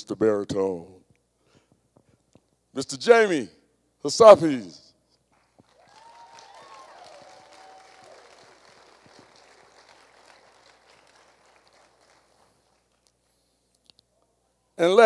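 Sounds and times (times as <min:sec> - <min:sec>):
audience applause: 0:05.6 - 0:13.0
audience cheer: 0:05.7 - 0:11.7.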